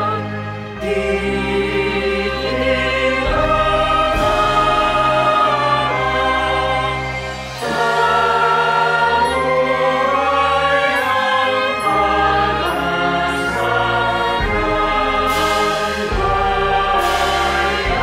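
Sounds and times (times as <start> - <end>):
choir singing a hymn: 0.0 - 18.0
symphony orchestra: 0.0 - 18.0.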